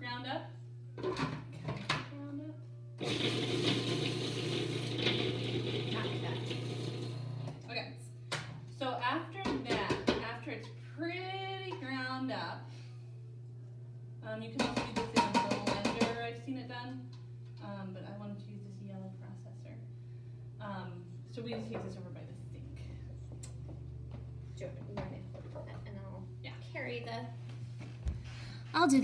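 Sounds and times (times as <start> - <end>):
food processor grinding: 3.0 - 7.5.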